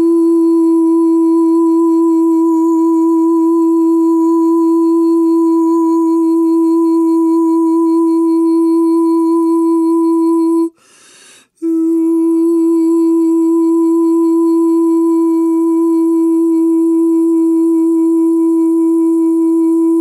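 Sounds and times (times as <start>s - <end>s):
woman humming a steady note: 0.0s - 10.8s, 11.6s - 20.0s.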